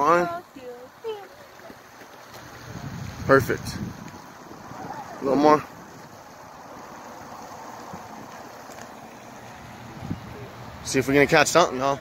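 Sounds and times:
rushing outdoor background noise: 0:00.0 - 0:12.0.

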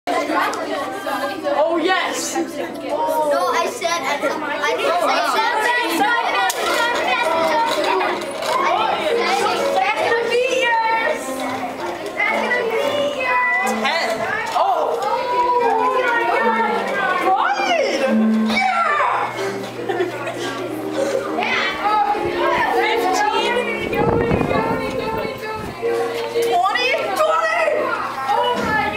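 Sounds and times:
children chattering: 0:00.1 - 0:28.9.

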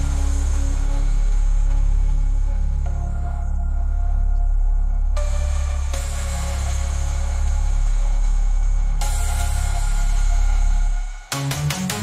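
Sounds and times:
deep sub-bass drone: 0:00.0 - 0:12.0.

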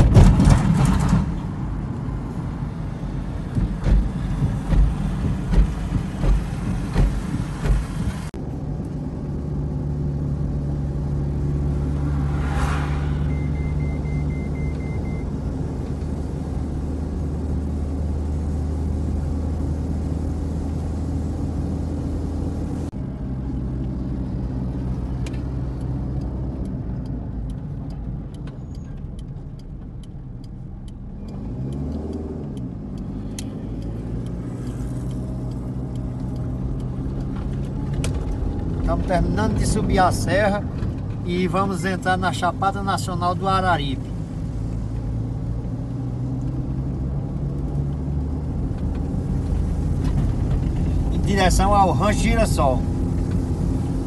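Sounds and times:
car engine and road noise: 0:00.0 - 0:54.0.

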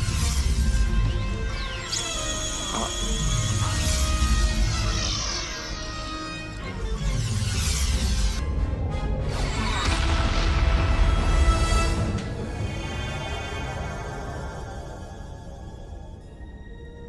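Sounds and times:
ominous orchestral music: 0:00.0 - 0:17.0.

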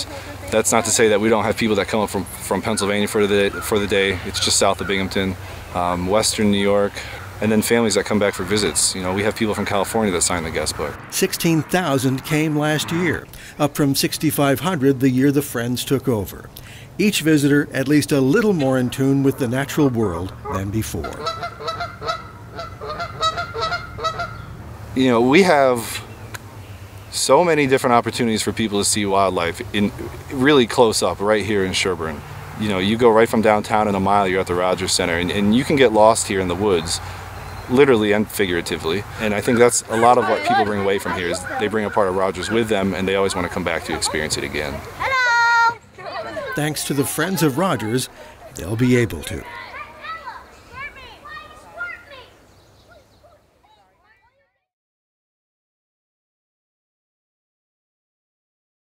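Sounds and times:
geese honking: 0:00.0 - 0:13.6, 0:18.3 - 0:24.5, 0:32.8 - 0:49.3
children calling and chattering: 0:00.0 - 0:54.6.

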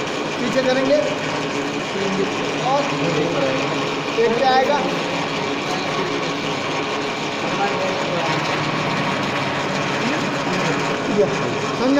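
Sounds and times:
metal lathe humming: 0:00.0 - 0:11.9.

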